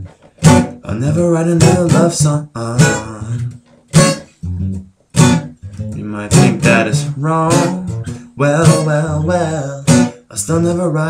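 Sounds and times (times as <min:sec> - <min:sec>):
person singing: 0:00.0 - 0:03.6, 0:05.7 - 0:11.0
acoustic guitar strumming: 0:00.0 - 0:11.0.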